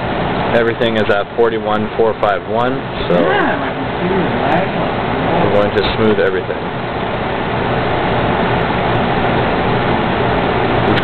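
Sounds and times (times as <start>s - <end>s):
fan noise: 0.0s - 11.0s
low hum: 0.0s - 11.0s.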